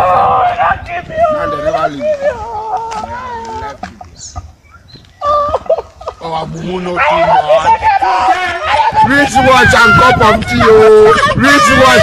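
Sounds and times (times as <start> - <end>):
man yelping: 0.0 - 3.8, 6.8 - 12.0.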